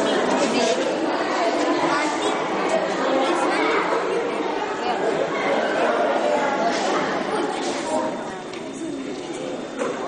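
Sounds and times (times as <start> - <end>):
chatter of several voices: 0.0 - 10.0.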